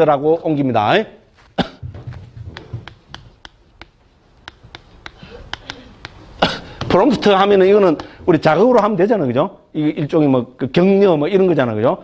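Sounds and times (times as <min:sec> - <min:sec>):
person coughing: 0:01.6 - 0:01.9, 0:05.2 - 0:06.9.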